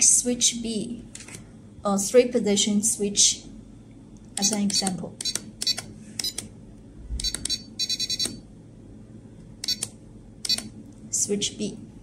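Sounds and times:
short electronic key beeps: 5.2 - 6.4, 7.2 - 8.4, 9.6 - 10.7.

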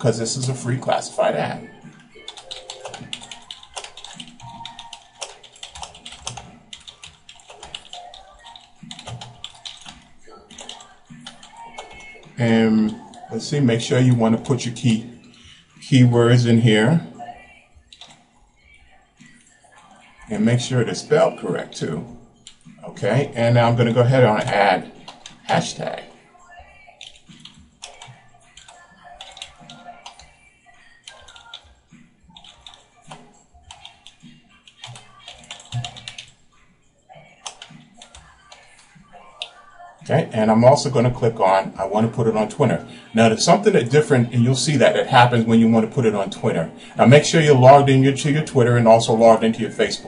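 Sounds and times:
rapid typing on keyboard: 0.0 - 15.1, 17.9 - 18.2, 22.5 - 26.1, 26.9 - 30.4, 31.0 - 36.4, 37.3 - 50.0
soft background music: 0.0 - 50.0.

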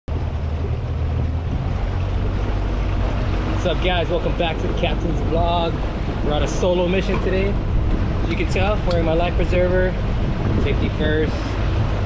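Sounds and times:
boat engine running: 0.1 - 12.0
wind rushing over microphone: 0.1 - 12.0.

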